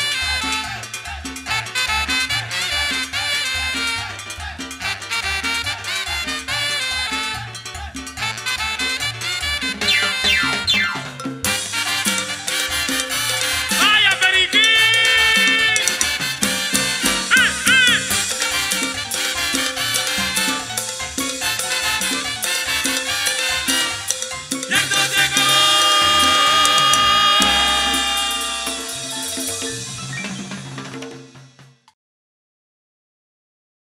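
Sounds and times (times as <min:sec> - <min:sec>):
latin dance orchestra playing: 0:00.0 - 0:31.8.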